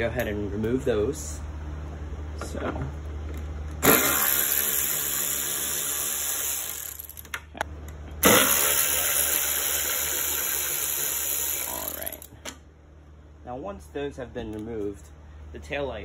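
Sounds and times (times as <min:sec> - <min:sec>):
cordless drill running: 0:03.8 - 0:07.2, 0:08.2 - 0:12.3.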